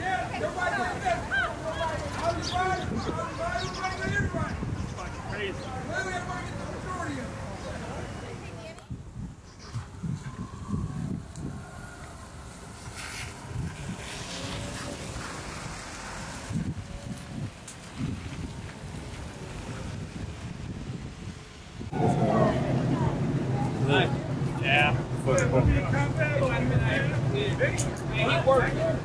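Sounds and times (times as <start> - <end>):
voices: 0.0 - 12.8, 21.9 - 29.0
street traffic: 0.0 - 29.0
wind on microphone: 2.0 - 5.4, 8.6 - 28.3
car passing: 10.3 - 29.0.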